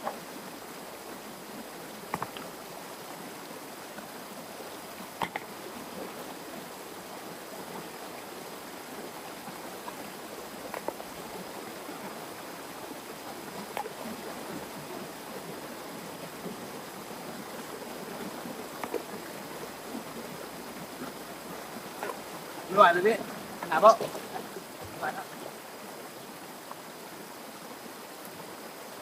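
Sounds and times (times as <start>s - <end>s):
stream water rushing over rocks: 0.0s - 29.0s.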